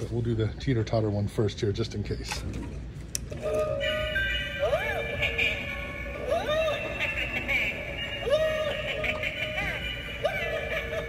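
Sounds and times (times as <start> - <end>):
electronic toy tune with swooping notes: 3.4 - 11.0.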